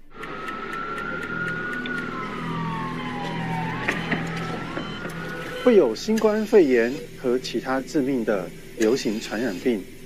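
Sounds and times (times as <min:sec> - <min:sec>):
siren wailing: 0:00.0 - 0:07.9
steady hum: 0:00.0 - 0:10.0
faint regular ticking: 0:06.0 - 0:09.4.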